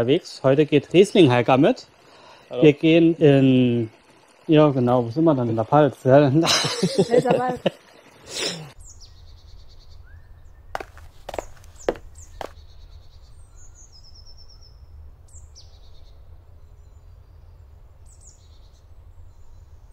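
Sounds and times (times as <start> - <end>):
small birds chirping: 7.8 - 19.9.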